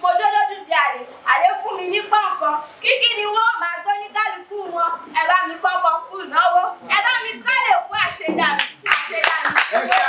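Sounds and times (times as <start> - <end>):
woman talking: 0.0 - 10.0
hand clapping: 8.5 - 10.0.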